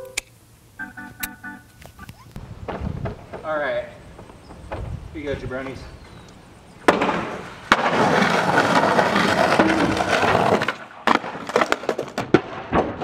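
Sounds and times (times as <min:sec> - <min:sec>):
skateboard wheels rolling: 0:06.8 - 0:12.4
skateboard clacking on asphalt: 0:06.9 - 0:12.4.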